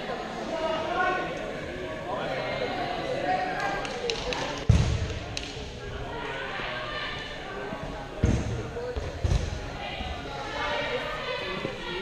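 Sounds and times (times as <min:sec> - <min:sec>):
voices echoing in gymnasium: 0:00.0 - 0:12.0
dodgeball hitting hard surface: 0:04.7 - 0:05.2.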